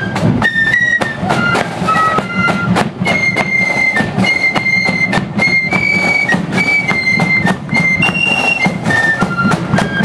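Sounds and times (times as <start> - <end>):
flutes holding high note: 0.0 - 10.0
steady drum beats: 0.0 - 10.0.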